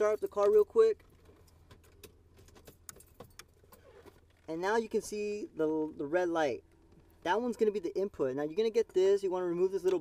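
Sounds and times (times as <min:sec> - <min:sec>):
car keys jangling: 0:00.0 - 0:04.5.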